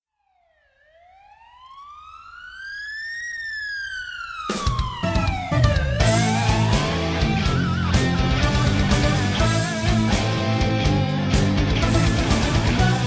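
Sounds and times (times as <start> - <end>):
police siren wailing: 0.1 - 13.0
music with drums: 4.5 - 13.0.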